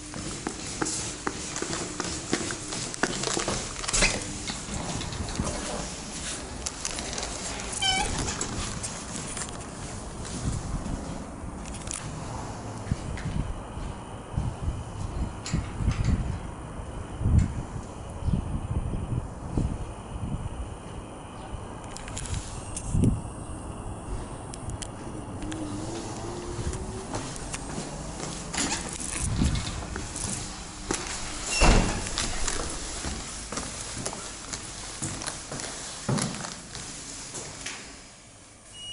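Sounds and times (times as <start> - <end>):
footsteps on tiles: 0.0 - 3.9, 25.8 - 37.7
high-pitched squeak: 7.7 - 8.4.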